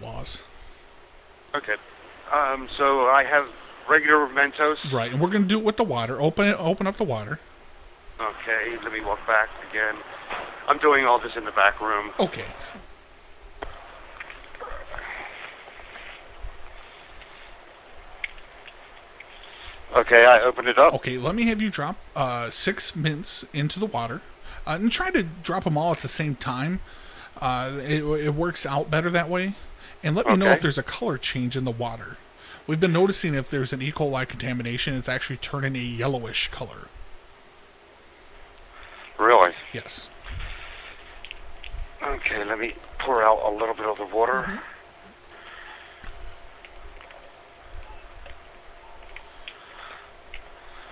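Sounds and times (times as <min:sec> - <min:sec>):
faint phone line noise: 0:00.0 - 0:50.9
rustles: 0:13.4 - 0:20.4, 0:38.0 - 0:43.2.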